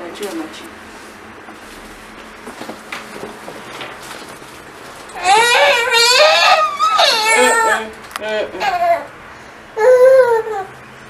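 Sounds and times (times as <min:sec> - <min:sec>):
handling knocks and rustles: 0:00.1 - 0:05.4.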